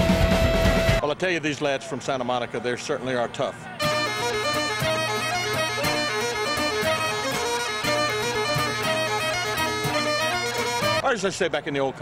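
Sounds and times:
bagpipe music: 3.8 - 11.0.

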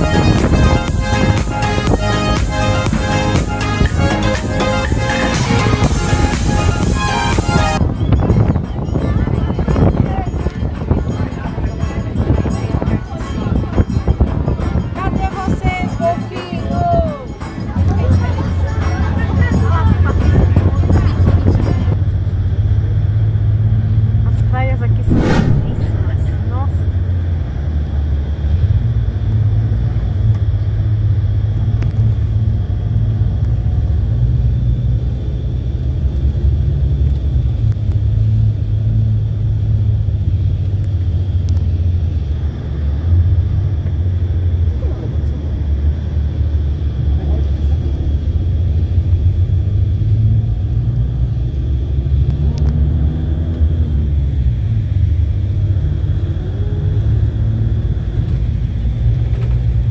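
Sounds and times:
bus rumbling inside cabin: 0.0 - 59.9
faint indistinct voices: 7.9 - 22.6.

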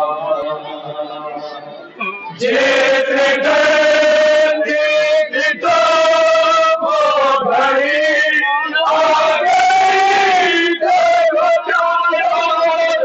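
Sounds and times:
men chanting a lament: 2.3 - 13.0.

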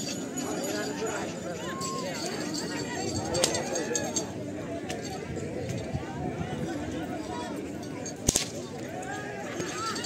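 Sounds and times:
crowd chatter: 0.0 - 10.0
whip cracking: 8.2 - 8.6.

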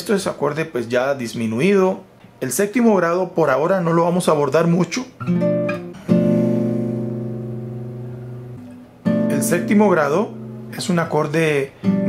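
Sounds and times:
nylon-string guitar chord ringing: 5.2 - 11.2.

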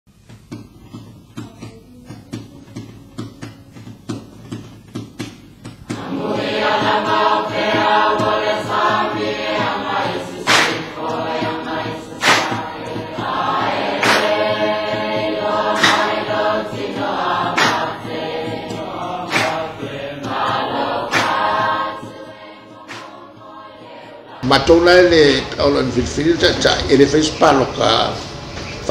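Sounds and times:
percussive beats: 0.1 - 28.1
choir singing: 1.6 - 4.7, 5.8 - 28.1.

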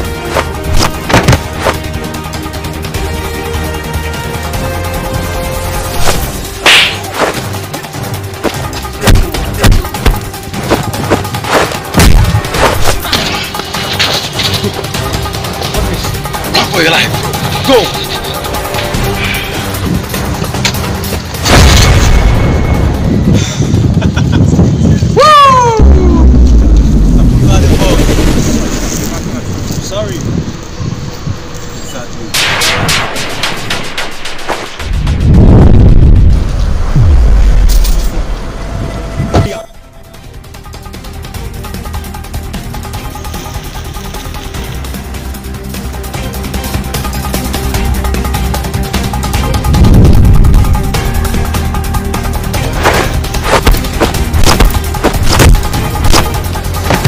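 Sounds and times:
background music: 0.0 - 57.0.

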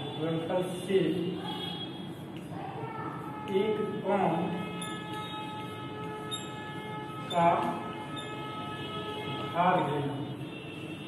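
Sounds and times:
steady hum of held tones: 0.0 - 11.0.

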